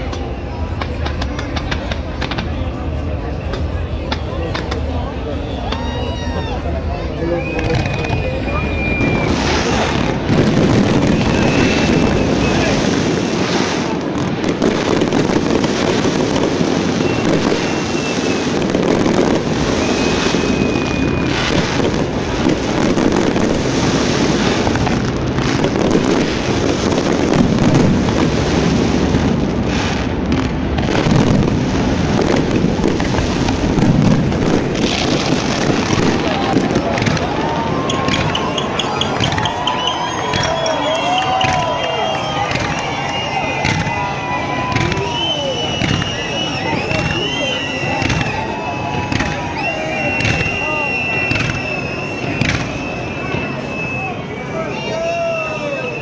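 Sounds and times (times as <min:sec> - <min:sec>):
fireworks bangs and crackling: 0:00.0 - 0:56.0.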